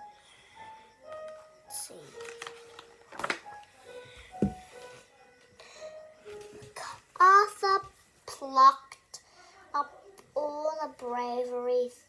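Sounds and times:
soft background music: 0.0s - 12.0s
paper page turning: 2.2s - 3.5s
thump: 4.4s - 4.6s.

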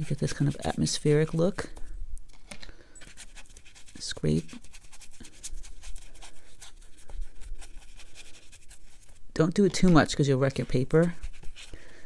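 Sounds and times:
brush scrubbing on wet paper: 0.0s - 1.6s, 3.2s - 9.2s, 10.6s - 11.8s.

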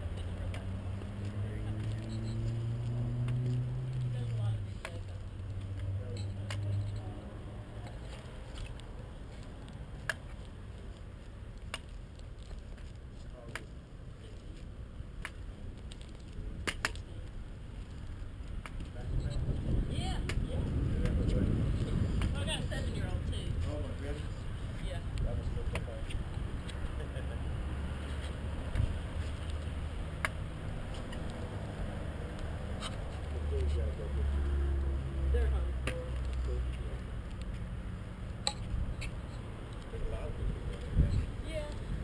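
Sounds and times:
steady low rumble: 13.8s - 42.0s.

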